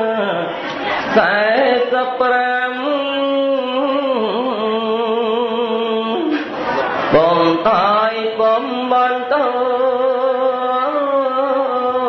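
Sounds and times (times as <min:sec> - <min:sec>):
man chanting: 0:00.0 - 0:06.5, 0:07.1 - 0:12.0.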